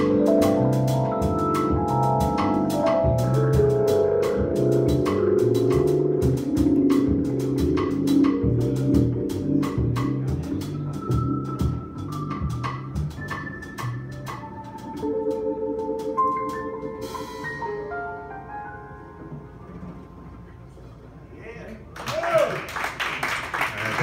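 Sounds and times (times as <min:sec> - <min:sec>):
walking upright bass: 0:00.0 - 0:17.9, 0:19.0 - 0:21.2
electric piano chords: 0:00.0 - 0:21.2.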